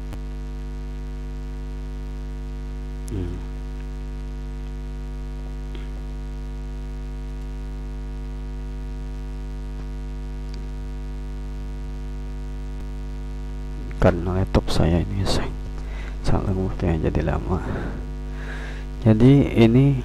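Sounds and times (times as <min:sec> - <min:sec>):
electrical mains hum: 0:00.0 - 0:20.0
brief wavering vocal sound: 0:03.1 - 0:03.5.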